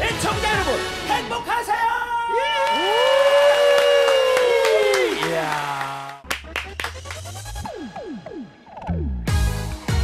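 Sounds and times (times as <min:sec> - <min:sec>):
backing track music: 0:00.0 - 0:02.2, 0:05.0 - 0:10.0.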